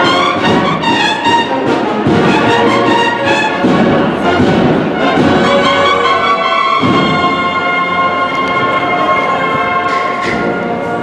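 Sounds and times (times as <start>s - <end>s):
drums playing: 0.0s - 10.6s
cornets playing march: 0.0s - 11.0s.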